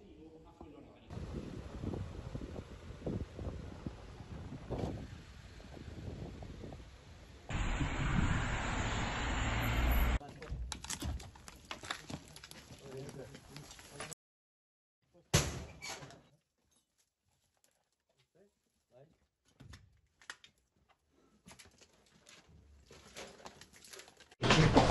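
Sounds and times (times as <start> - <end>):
wind buffeting microphone: 1.1 - 9.1
low rumbling: 7.5 - 10.2.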